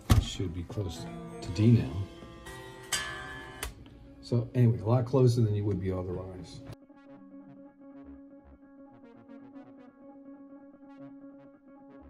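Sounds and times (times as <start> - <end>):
electric guitar strings plucked: 0.7 - 3.8.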